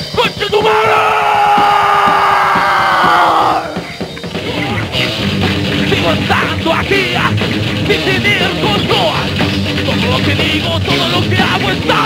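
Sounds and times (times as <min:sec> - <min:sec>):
drums: 0:00.0 - 0:12.0
rock band playing live: 0:00.0 - 0:12.0
distorted guitar: 0:00.7 - 0:12.0.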